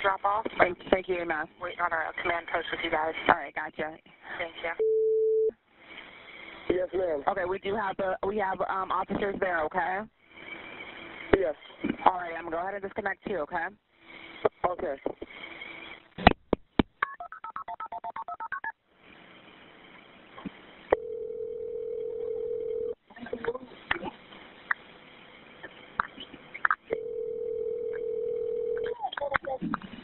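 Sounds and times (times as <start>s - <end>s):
telephone ringback tone: 21.0s - 23.0s, 26.9s - 28.8s.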